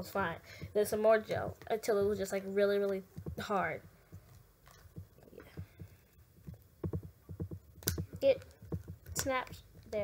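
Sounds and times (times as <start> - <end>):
soft low thumps of doll handling: 0.6 - 10.0.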